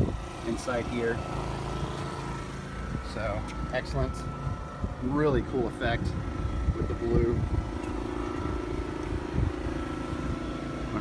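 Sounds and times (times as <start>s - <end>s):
machine humming: 0.0s - 11.0s.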